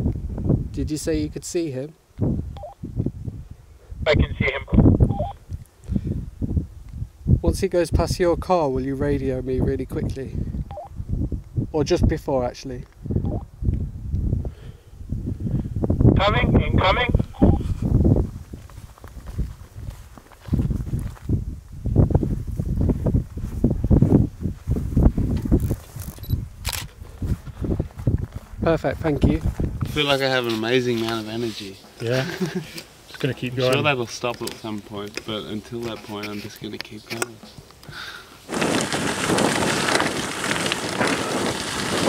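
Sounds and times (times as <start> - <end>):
wind buffeting microphone: 0.0 - 1.4, 2.1 - 30.4, 37.9 - 42.0
two-way radio beep: 4.1 - 5.4, 16.4 - 17.6.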